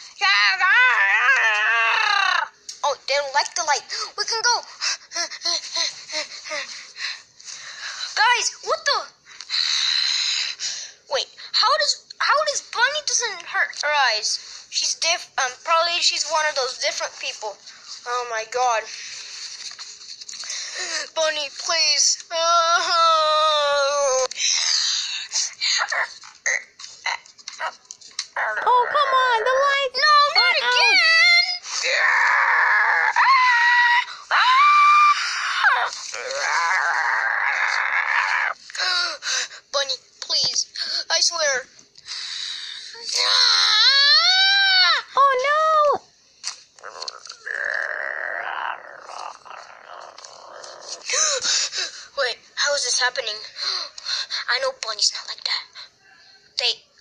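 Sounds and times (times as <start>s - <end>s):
child yelping or growling: 28.4s - 38.6s, 46.8s - 51.1s
young person growling raspily: 35.7s - 38.6s, 46.8s - 51.4s.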